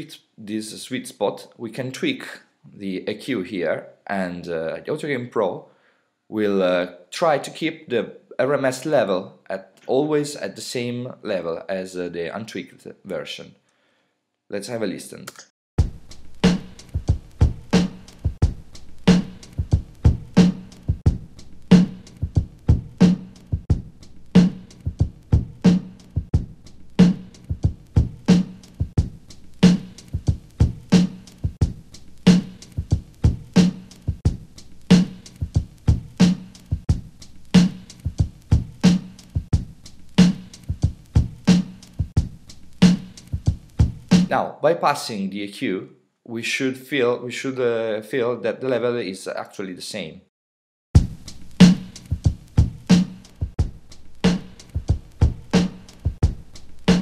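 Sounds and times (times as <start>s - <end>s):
drum loop beat: 15.8s - 44.4s, 51.0s - 57.0s.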